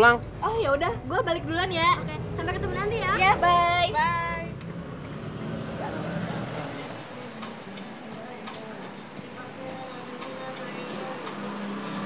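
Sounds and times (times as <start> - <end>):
traffic noise hiss: 0.0 - 12.0
faint voices: 5.7 - 12.0.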